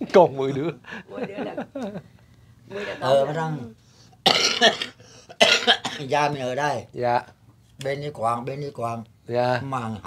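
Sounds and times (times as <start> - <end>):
person coughing: 4.3 - 6.1.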